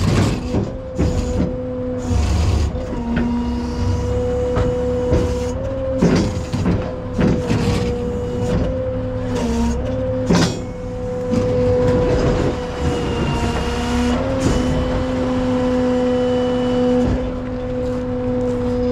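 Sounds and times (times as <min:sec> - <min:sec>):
tow truck droning hum: 0:00.0 - 0:18.9.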